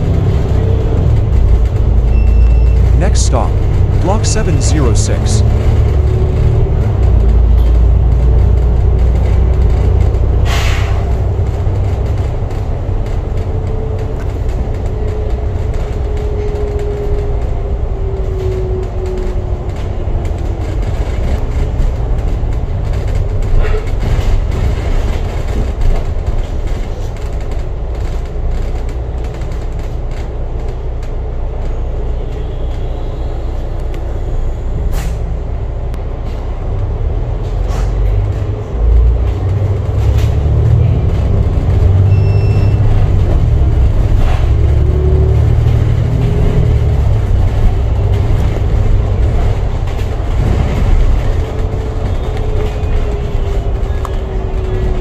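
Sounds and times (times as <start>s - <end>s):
bus engine and road rumble: 0.0s - 55.0s
faint rattles and clicks: 18.2s - 31.8s.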